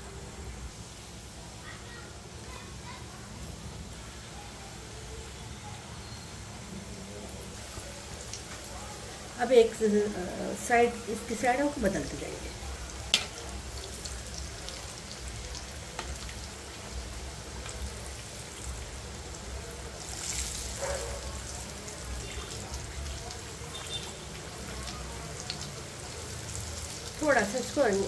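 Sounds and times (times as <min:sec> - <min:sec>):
food sizzling in hot oil: 0:00.0 - 0:28.0.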